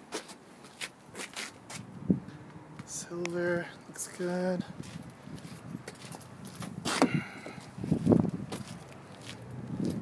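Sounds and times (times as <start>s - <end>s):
footsteps on pavement: 0.1s - 10.0s.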